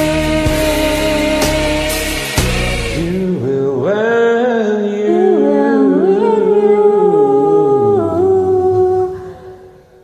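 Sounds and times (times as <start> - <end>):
man and woman singing duet: 0.0 - 9.8
karaoke backing track: 0.0 - 10.0.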